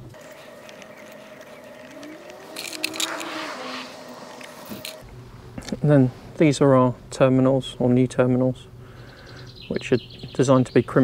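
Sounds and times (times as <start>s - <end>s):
rubber seals scraping and squeaking: 0.0s - 5.0s.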